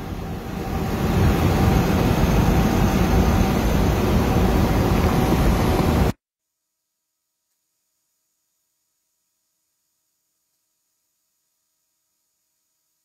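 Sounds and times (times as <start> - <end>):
road and engine rumble in vehicle: 0.0 - 6.1.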